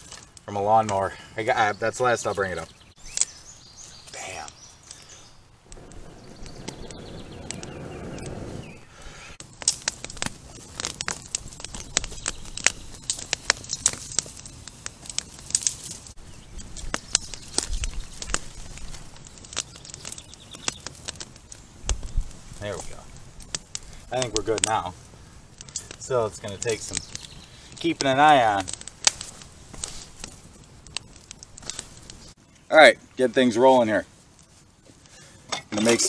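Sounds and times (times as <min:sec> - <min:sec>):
campfire flames rushing: 0:00.0 - 0:36.0
fire crackling and popping: 0:00.0 - 0:36.0.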